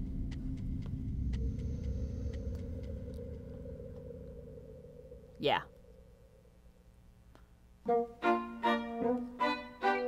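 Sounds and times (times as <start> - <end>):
low rumbling drone: 0.0 - 7.3
higher hum: 0.0 - 7.8.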